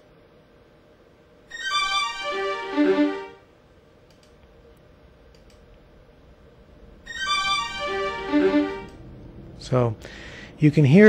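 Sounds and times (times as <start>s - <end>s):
fast violin arpeggio: 1.5s - 3.4s, 7.1s - 9.0s
faint clicks: 4.1s - 5.8s.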